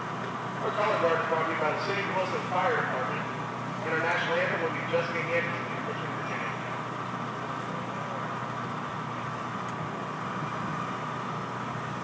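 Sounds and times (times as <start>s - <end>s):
outdoor background noise: 0.0s - 12.0s
steady mechanical hum: 0.0s - 12.0s.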